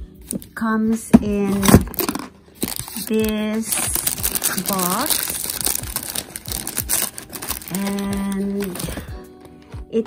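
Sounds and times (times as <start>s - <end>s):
plastic wrapping crinkling: 1.4s - 9.1s.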